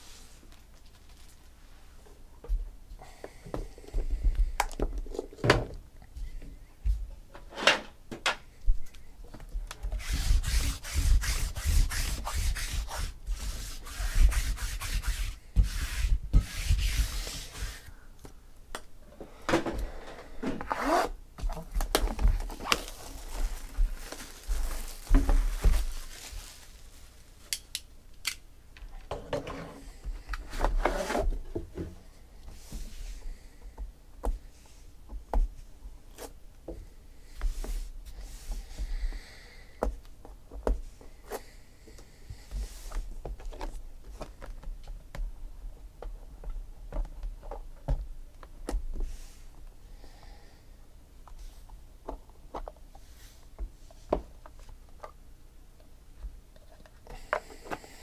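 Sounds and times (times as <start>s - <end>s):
cardboard rubbing and scraping: 9.9s - 17.9s, 30.5s - 31.3s
plastic wrap crackling: 21.5s - 27.8s.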